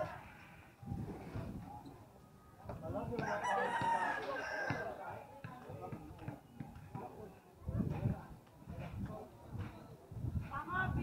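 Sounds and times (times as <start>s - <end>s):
rooster crowing: 3.2s - 4.9s.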